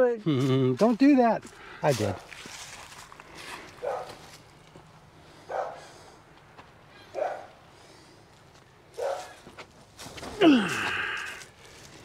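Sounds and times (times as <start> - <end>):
dog barking: 3.8 - 4.2, 5.5 - 5.9, 7.1 - 7.6, 9.0 - 9.4.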